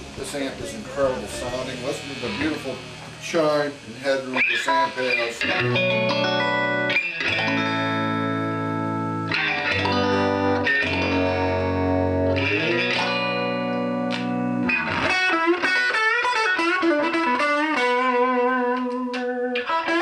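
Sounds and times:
clean electric guitar playing: 0.0 - 20.0.

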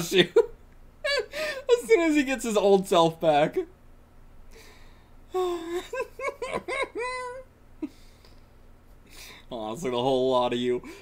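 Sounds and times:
man laughing with high squeal: 0.2 - 1.7, 5.4 - 8.0.

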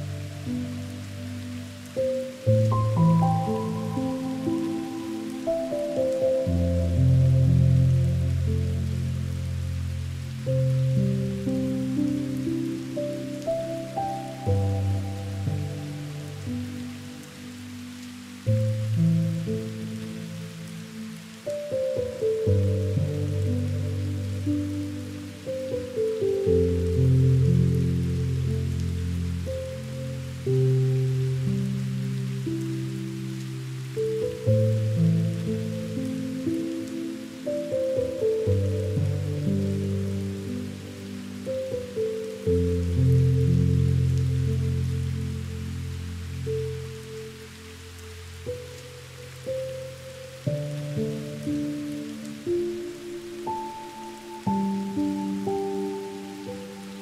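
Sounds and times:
rain patter: 0.0 - 57.0
soft instrumental music: 0.0 - 57.0.

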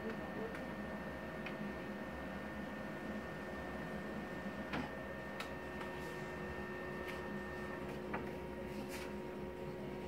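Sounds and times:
laser printer humming with whine: 0.0 - 10.0.

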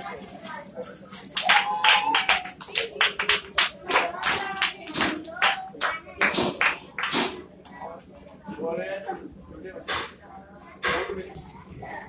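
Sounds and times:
children clapping hands: 1.2 - 7.8.

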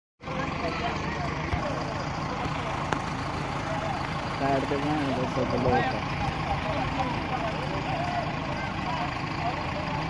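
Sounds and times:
crowd chatter: 0.2 - 10.0
diesel tractor engines idling: 0.2 - 10.0.

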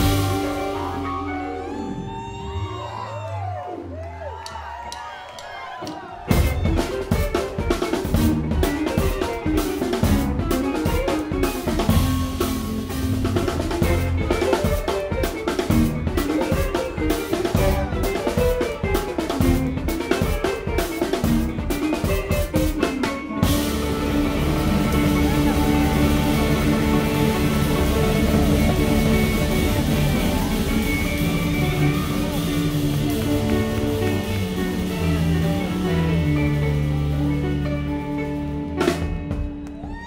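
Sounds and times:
busy drum beat: 0.0 - 1.6, 5.8 - 40.0
live band playing: 0.0 - 4.1, 5.4 - 40.0.

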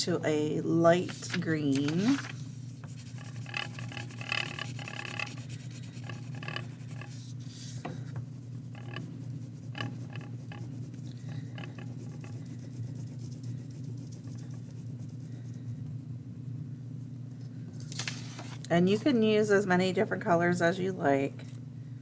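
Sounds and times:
low background hum: 0.0 - 22.0
crayon scribbling on paper: 2.9 - 7.7, 8.6 - 15.4.

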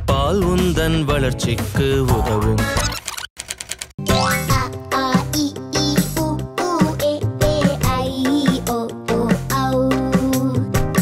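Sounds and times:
bouncy children's music: 0.1 - 3.0, 4.0 - 11.0.

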